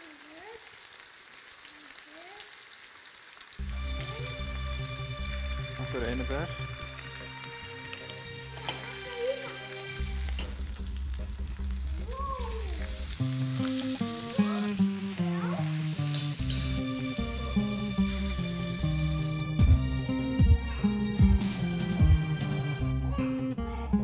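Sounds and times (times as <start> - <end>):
meat sizzling in a pan: 0.0 - 19.4
background music: 3.6 - 24.0.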